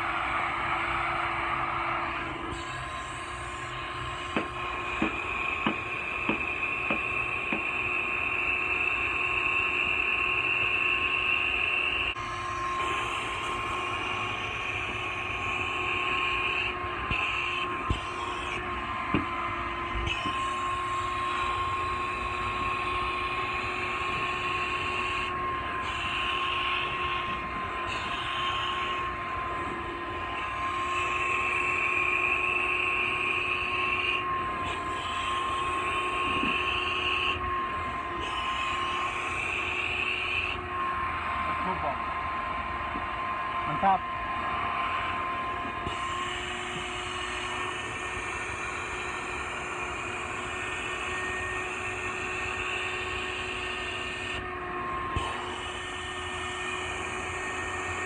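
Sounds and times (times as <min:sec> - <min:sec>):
vacuum motor whine: 0:00.0 - 0:58.0.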